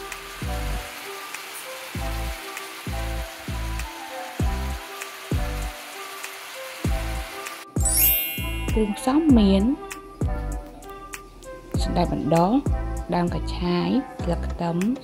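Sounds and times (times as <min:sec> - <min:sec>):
background music with bass: 0:00.0 - 0:01.0, 0:02.0 - 0:05.8, 0:06.9 - 0:14.8
bean sprouts sizzling in skillet: 0:00.0 - 0:09.9.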